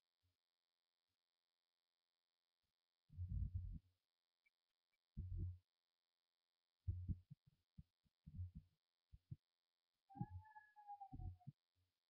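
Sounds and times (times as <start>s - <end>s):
distant high-pitched scream: 10.1s - 11.2s.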